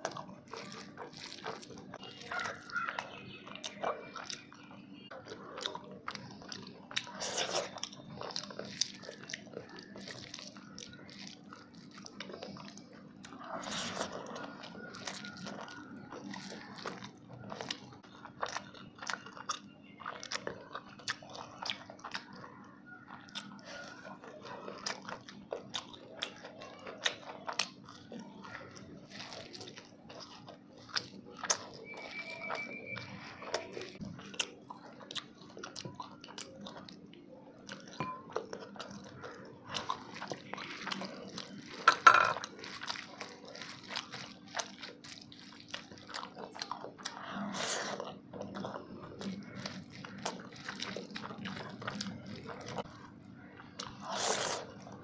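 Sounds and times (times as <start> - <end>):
chewing and crunching: 0.0 - 55.0.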